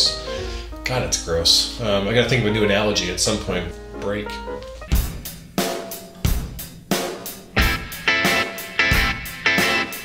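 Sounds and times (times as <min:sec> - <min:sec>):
drum kit beat with cymbals: 0:04.6 - 0:10.0
electric guitar: 0:07.6 - 0:10.0.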